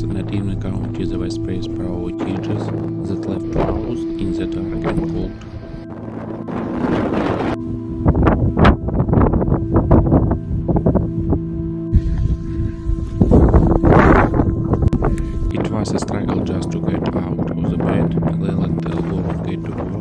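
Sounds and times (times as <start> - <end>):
background music with held tones: 0.0 - 20.0
blizzard wind buffeting microphone: 0.0 - 20.0.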